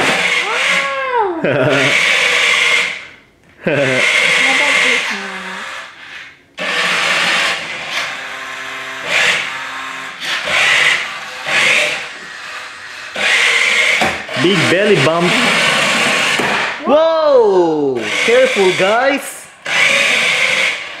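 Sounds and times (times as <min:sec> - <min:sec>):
toy car electric motor whirring: 0:00.0 - 0:01.0, 0:01.6 - 0:16.8, 0:18.0 - 0:21.0.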